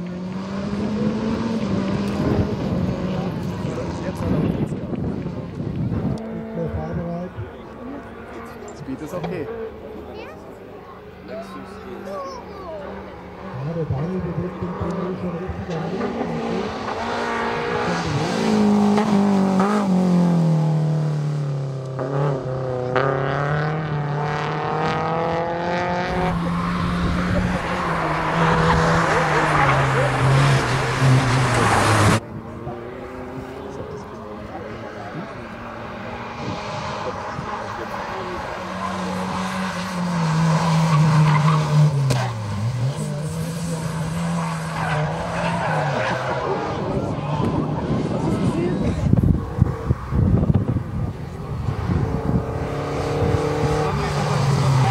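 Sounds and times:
race car engines revving: 0:00.0 - 0:54.9.

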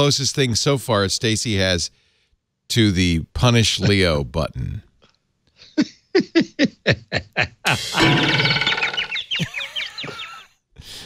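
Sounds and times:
high chirping glides: 0:08.0 - 0:10.4.

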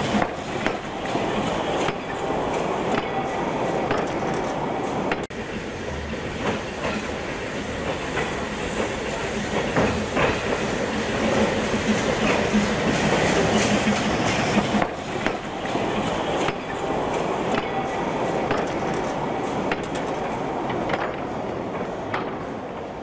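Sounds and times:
steam train wheels clattering: 0:00.0 - 0:23.0.

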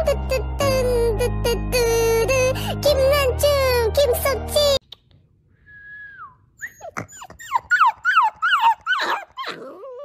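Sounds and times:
puppy whining: 0:06.5 - 0:10.0.

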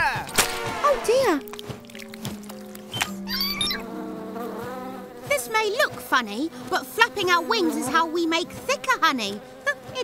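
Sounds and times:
cartoon bees buzzing: 0:00.6 - 0:10.0.

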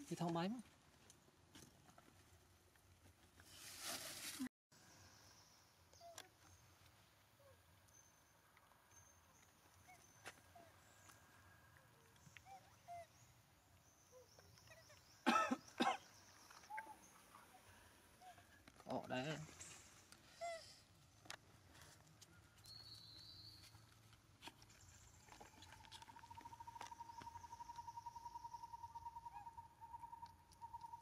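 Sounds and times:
cough-like vocal sounds: 0:15.2 - 0:16.1.

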